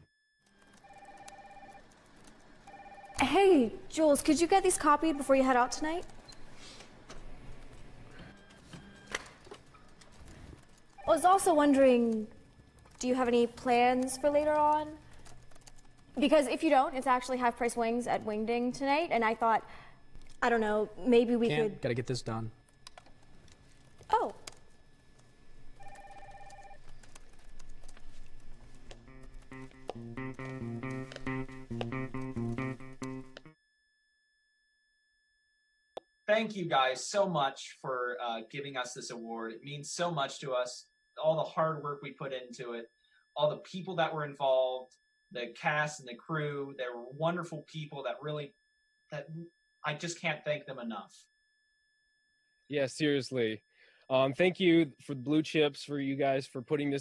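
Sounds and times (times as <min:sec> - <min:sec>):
office phone trill: 0:00.0 - 0:06.1, 0:10.6 - 0:12.3, 0:13.0 - 0:17.2, 0:25.7 - 0:27.7, 0:28.6 - 0:33.5
desk telephone ringing: 0:00.4 - 0:03.4, 0:25.8 - 0:26.8
computer keyboard clicks: 0:12.8 - 0:16.0, 0:22.7 - 0:33.5.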